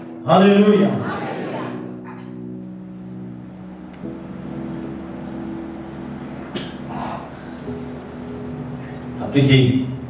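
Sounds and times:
soft sustained chords: 0:00.0 - 0:10.0.

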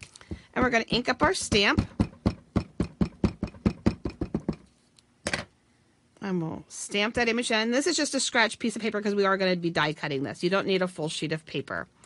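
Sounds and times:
ink pad tapping on rubber stamp: 0:00.2 - 0:04.7.

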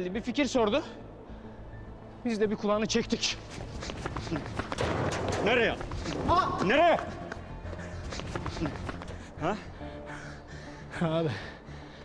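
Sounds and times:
low background music: 0:00.0 - 0:12.0
scuffling footsteps on concrete: 0:03.2 - 0:09.2.

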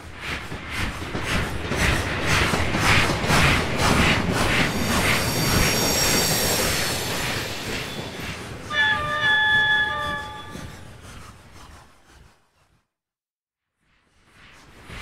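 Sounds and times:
train running on rails: 0:00.0 - 0:12.8
high-pitched wheel squeal: 0:08.0 - 0:11.0.

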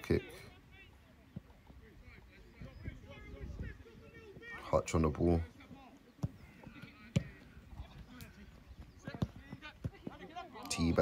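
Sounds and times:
football being kicked: 0:06.2 - 0:08.0, 0:09.0 - 0:10.2.

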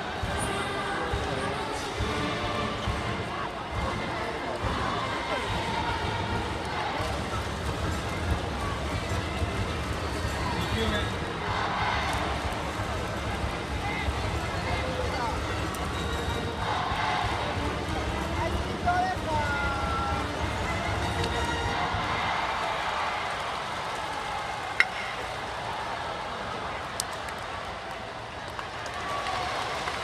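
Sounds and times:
crowd cheering: 0:00.0 - 0:30.0
bat striking ball: 0:24.8 - 0:25.3.

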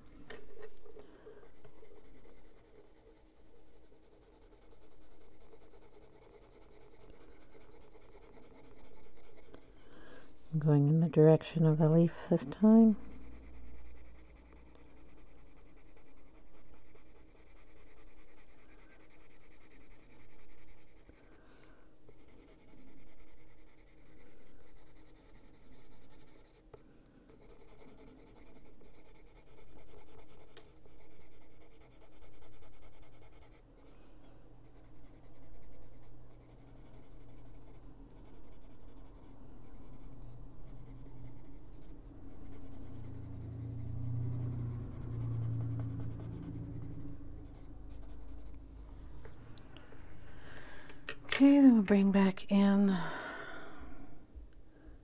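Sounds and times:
pencil shading on paper: 0:00.4 - 0:48.7
low hum: 0:36.3 - 0:55.0.

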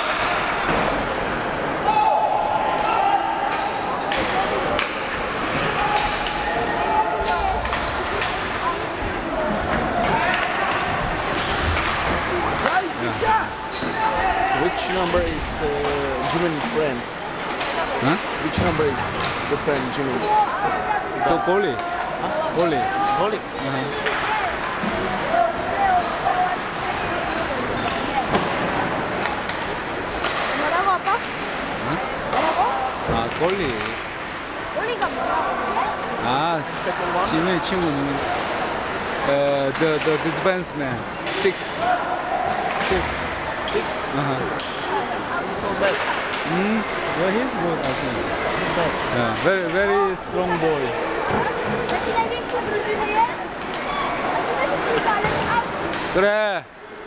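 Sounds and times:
hockey sticks and puck clacking: 0:00.0 - 0:01.4, 0:03.4 - 0:20.6, 0:21.2 - 0:35.3, 0:35.9 - 0:50.0, 0:51.2 - 0:56.2
voices in an arena: 0:00.0 - 0:57.0
hockey sticks and puck knocking: 0:07.3 - 0:14.0, 0:27.3 - 0:31.4, 0:32.3 - 0:34.2, 0:44.5 - 0:44.9, 0:45.7 - 0:47.0.

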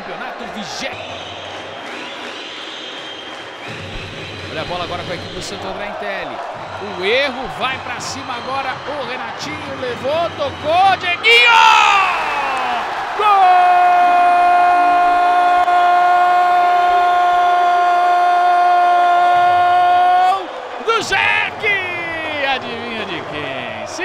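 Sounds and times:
crowd noise: 0:00.0 - 0:24.0
excited speech: 0:04.6 - 0:24.0
commentator's drawn-out goal cry: 0:11.1 - 0:24.0.

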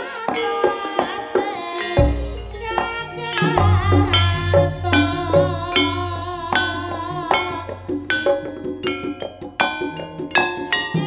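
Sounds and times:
gamelan music of bronze gongs: 0:01.8 - 0:11.0.

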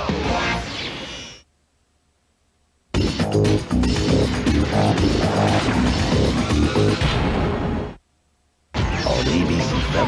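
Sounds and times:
loud promo music: 0:03.0 - 0:07.9
trailer soundtrack music: 0:03.0 - 0:08.0.

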